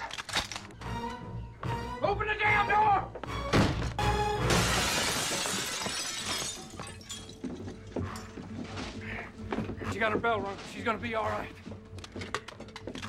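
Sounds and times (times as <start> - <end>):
dramatic score music: 0.2 - 4.5
glass shattering crash: 4.4 - 7.4.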